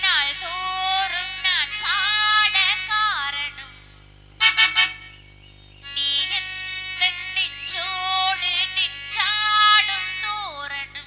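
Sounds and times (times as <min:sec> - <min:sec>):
high voice singing: 0:00.0 - 0:03.8, 0:06.0 - 0:11.0
harmonium drone: 0:00.0 - 0:11.0.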